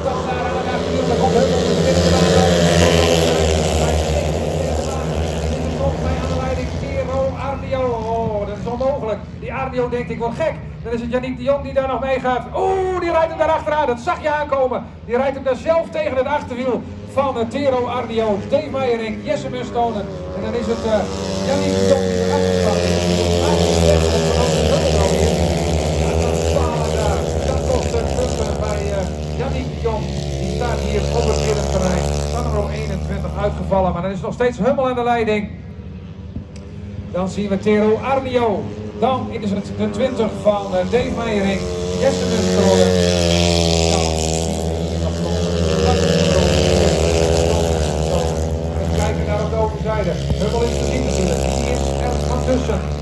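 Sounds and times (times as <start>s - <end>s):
motorcycle engines droning: 0.0s - 53.0s.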